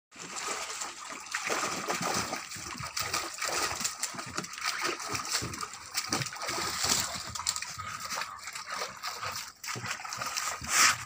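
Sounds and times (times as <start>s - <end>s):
puppies splashing in water: 0.1s - 11.0s.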